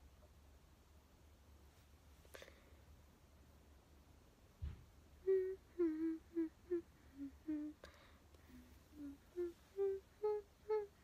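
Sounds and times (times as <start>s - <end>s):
low thump: 4.6s - 4.9s
woman humming a tune: 5.2s - 11.0s.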